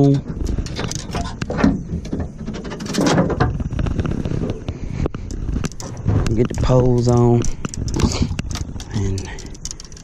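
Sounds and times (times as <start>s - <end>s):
fishing gear knocking and rattling: 0.0s - 10.0s.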